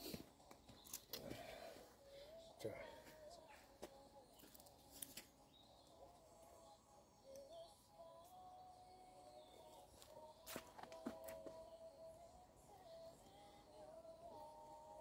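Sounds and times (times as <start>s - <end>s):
faint wavering steady tone: 11.1s - 15.0s.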